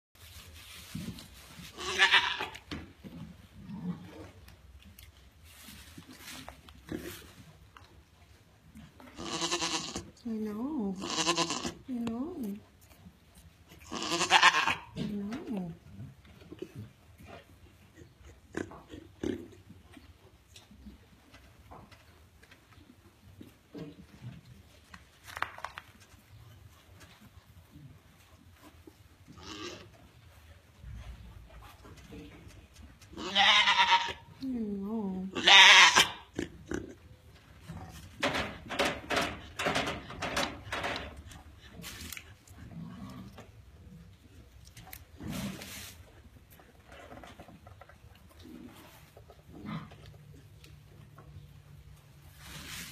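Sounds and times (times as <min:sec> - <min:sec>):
goat bleating loud and harsh: 0:01.7 - 0:02.6, 0:09.2 - 0:10.1, 0:11.0 - 0:11.8, 0:13.8 - 0:15.0, 0:33.2 - 0:34.3, 0:35.3 - 0:36.3.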